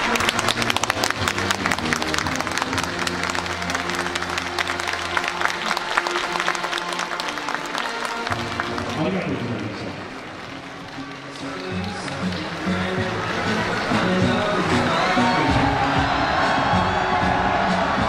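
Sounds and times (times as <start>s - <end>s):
crowd applause: 0.0s - 18.0s
music playing: 0.0s - 18.0s.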